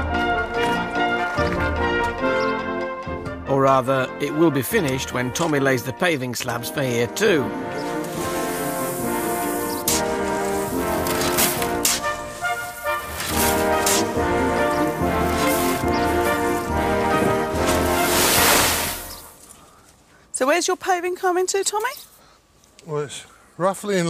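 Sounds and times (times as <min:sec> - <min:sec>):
sustained chord music: 0:00.0 - 0:18.8.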